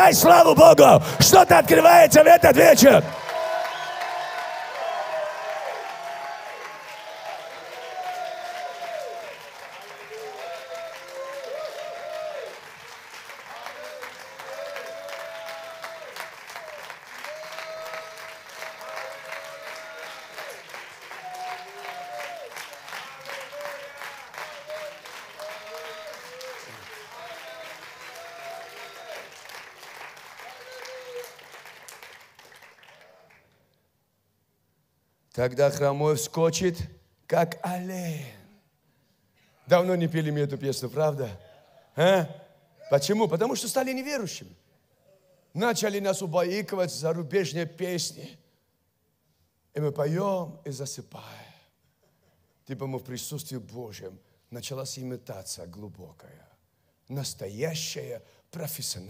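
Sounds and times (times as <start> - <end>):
congregation applauding: 0.0 - 33.6.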